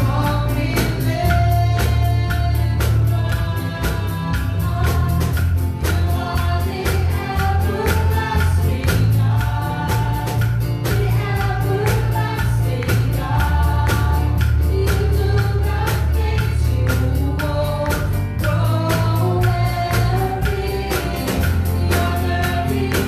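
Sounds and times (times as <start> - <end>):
deep bass line: 0.0 - 23.0
group singing gospel song: 0.0 - 23.0
keyboard accompaniment: 0.0 - 23.0
steady percussion beat: 0.0 - 23.0.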